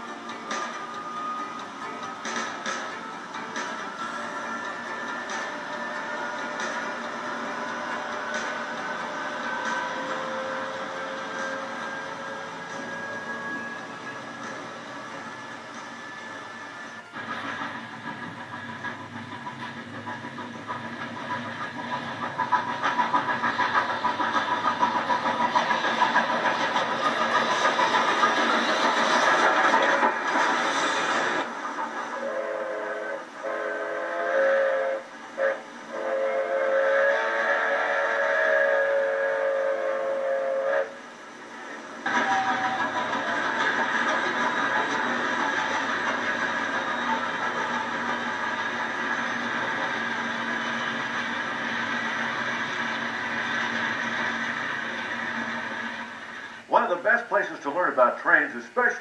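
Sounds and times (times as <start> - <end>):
train rumble and wheel clatter: 0.0 - 59.0
locomotive horn: 32.2 - 41.0.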